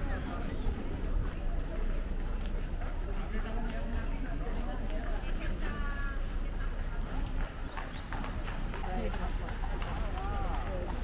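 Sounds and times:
horse hooves on cobblestones: 0.0 - 11.0.

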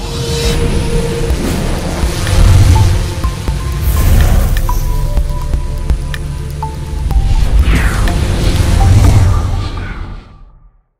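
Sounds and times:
deep rumble: 0.0 - 10.7.

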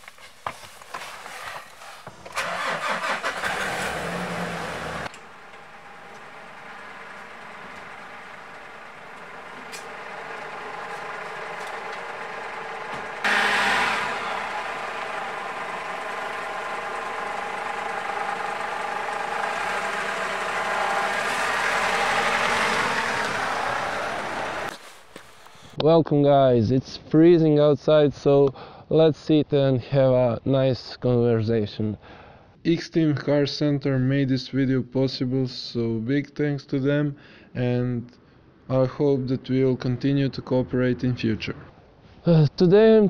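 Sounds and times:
diesel engine starting and running: 2.2 - 25.8.

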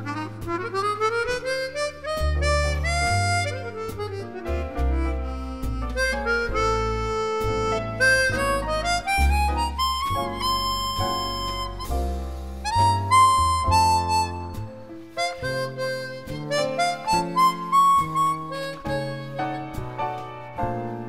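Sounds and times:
jazz harmonica melody: 0.0 - 21.0
jazz trio accompaniment: 0.0 - 21.0
low bass notes: 0.0 - 21.0.

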